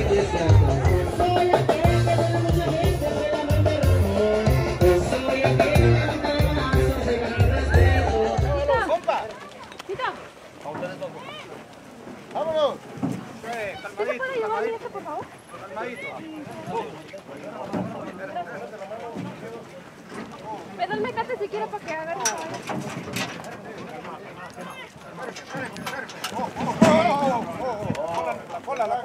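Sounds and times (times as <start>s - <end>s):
horse hooves on dirt: 0.0s - 29.0s
voices calling: 0.0s - 29.0s.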